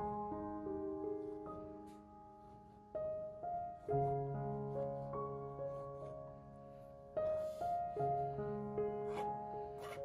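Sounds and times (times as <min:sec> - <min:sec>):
soft slow melody: 0:00.0 - 0:10.0.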